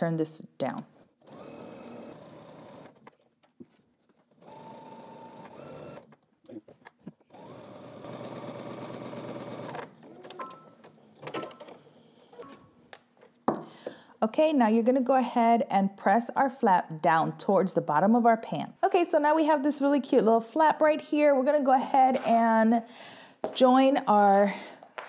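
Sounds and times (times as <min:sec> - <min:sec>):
sewing machine stitching: 0:01.2 - 0:03.2, 0:04.3 - 0:06.1, 0:07.3 - 0:12.5.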